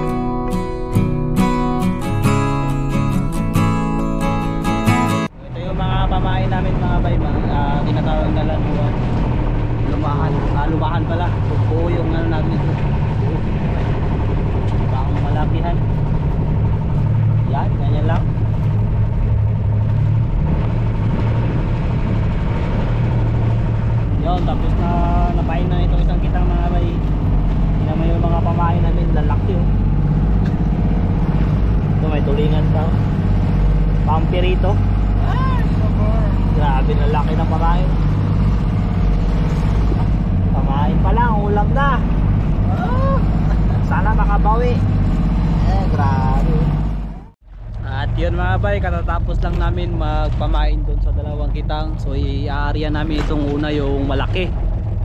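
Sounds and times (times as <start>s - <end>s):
boat engine humming: 0.0s - 55.0s
people talking: 5.4s - 9.0s, 9.8s - 13.9s, 14.9s - 15.8s, 17.4s - 18.3s, 24.2s - 27.0s, 27.8s - 29.7s, 32.0s - 33.0s, 34.1s - 38.0s, 40.5s - 42.1s, 42.7s - 44.9s, 45.6s - 46.8s, 47.8s - 54.6s.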